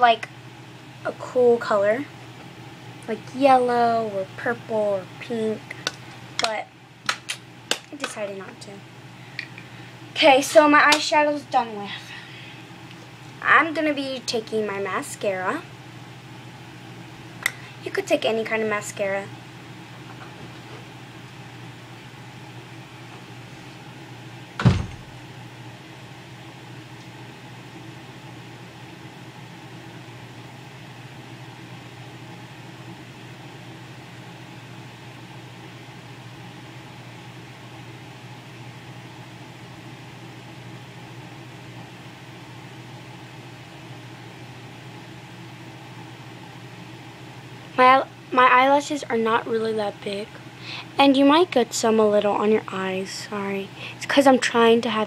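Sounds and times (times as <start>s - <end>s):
low room hum: 0.0s - 55.0s.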